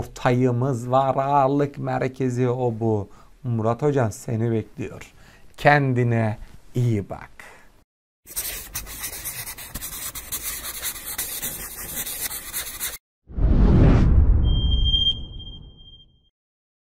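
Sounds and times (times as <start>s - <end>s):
scratchy rustling noise: 8.3s - 13.0s
whoosh with deep rumble: 13.3s - 16.0s.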